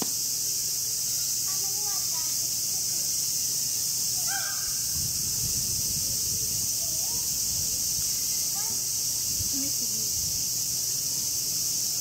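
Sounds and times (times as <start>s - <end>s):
cicadas droning: 0.0s - 12.0s
crow cawing: 4.2s - 4.9s.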